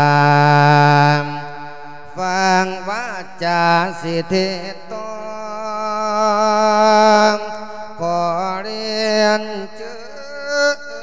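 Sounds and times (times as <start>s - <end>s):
man singing through a microphone: 0.0s - 11.0s.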